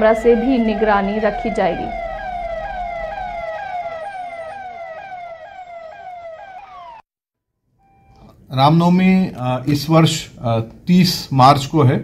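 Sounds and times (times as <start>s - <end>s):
electronic siren sweeping: 0.0s - 7.0s.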